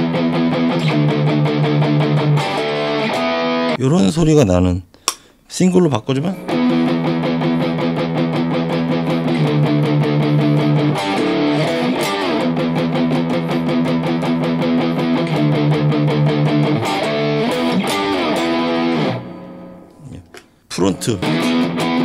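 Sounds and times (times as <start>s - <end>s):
overdriven electric guitar riff: 0.0s - 3.8s, 6.3s - 22.0s.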